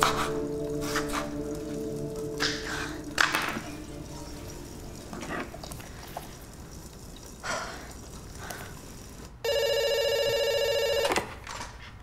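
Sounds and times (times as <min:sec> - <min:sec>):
telephone ringing electronic trill: 0:09.4 - 0:11.2.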